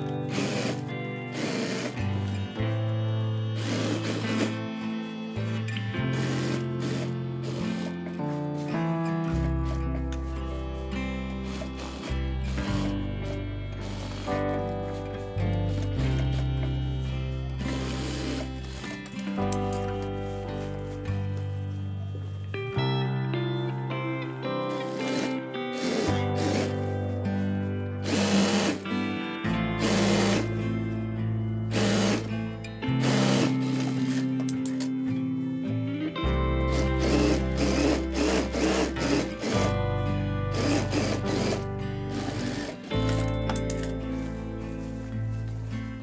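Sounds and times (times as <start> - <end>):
sewing machine stitching: 0.0 - 2.1, 3.6 - 4.6, 6.1 - 8.0, 11.4 - 15.0, 17.6 - 19.1, 24.8 - 26.9, 28.0 - 28.8, 29.8 - 30.6, 31.7 - 32.4, 33.0 - 34.3, 36.7 - 39.8, 40.5 - 43.9
background music with bass line: 0.0 - 46.0.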